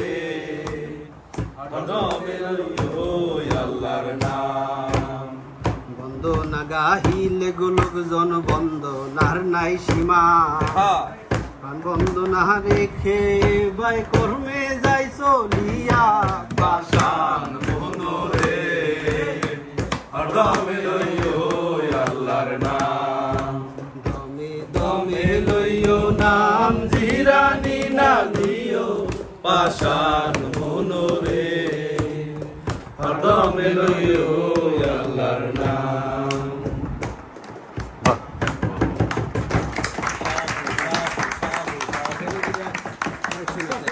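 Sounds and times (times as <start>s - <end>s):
men singing in unison: 0.0s - 37.3s
struck percussion beat: 0.0s - 43.9s
hand claps and taps on wood: 0.6s - 43.9s
voices: 39.9s - 43.9s.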